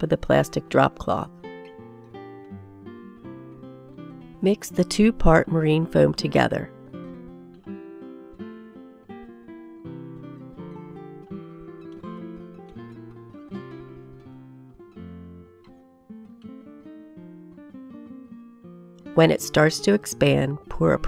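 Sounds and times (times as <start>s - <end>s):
acoustic guitar plucked notes: 0.0s - 21.0s.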